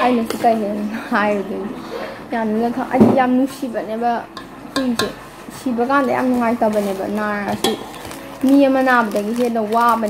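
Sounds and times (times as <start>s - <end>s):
woman talking: 0.0s - 7.8s, 8.4s - 10.0s.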